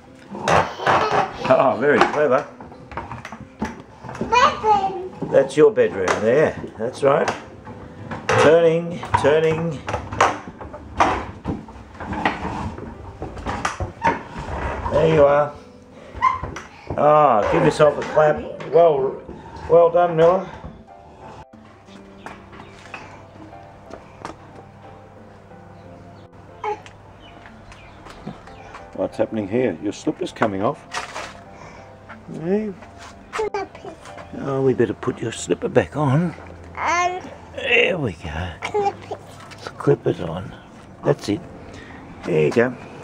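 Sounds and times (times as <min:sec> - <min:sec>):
toy wheels rumbling on wooden floor: 0:11.0 - 0:15.3.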